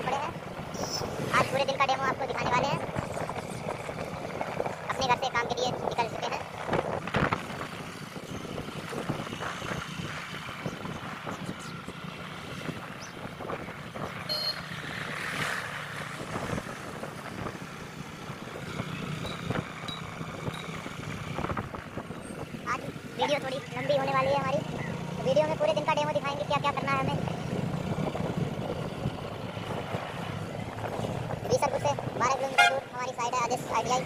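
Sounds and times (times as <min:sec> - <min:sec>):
road and wind noise: 0:00.0 - 0:34.0.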